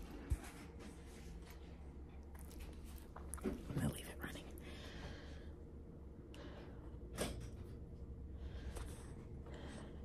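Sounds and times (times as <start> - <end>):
low room hum: 0.0 - 10.0
person whispering: 3.7 - 4.6.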